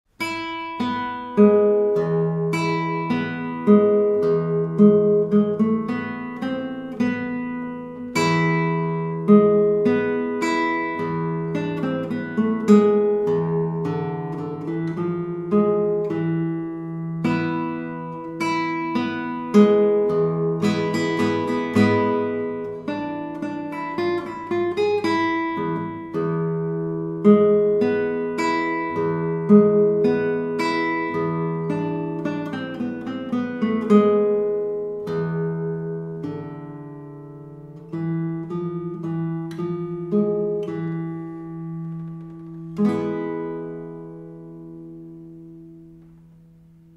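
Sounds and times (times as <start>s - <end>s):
classical guitar fingerstyle: 0.1s - 46.9s.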